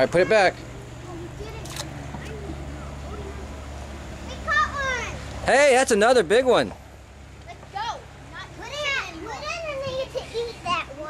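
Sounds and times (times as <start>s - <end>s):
girls calling out: 0.0s - 5.4s.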